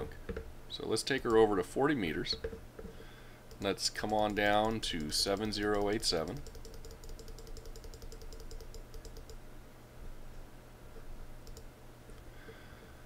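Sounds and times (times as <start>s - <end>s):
low steady hum: 0.0s - 13.0s
computer mouse clicking: 2.3s - 9.4s, 11.4s - 12.2s.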